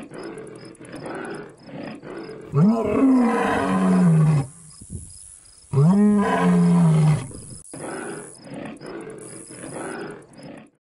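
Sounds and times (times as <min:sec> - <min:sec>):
deep animal roar: 0:00.0 - 0:04.6, 0:05.7 - 0:10.8
rough animal growls: 0:00.0 - 0:04.6, 0:05.7 - 0:10.8.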